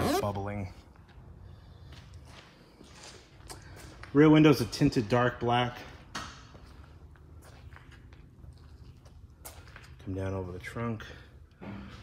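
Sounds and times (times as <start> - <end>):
faint footsteps: 0.9 - 4.4, 5.8 - 10.1.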